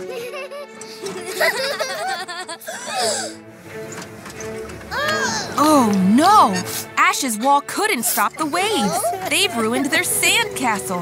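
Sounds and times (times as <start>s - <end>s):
light background music: 0.0s - 11.0s
cartoon voices and giggles: 7.3s - 10.2s.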